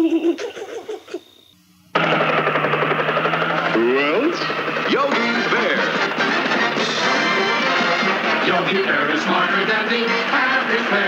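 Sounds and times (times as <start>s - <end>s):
cartoon helicopter chopping: 1.9s - 11.0s
low engine hum: 2.0s - 11.0s.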